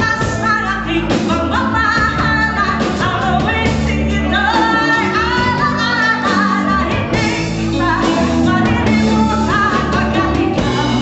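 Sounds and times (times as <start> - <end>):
live band playing: 0.0 - 11.0
woman singing pop-rock song: 0.0 - 11.0.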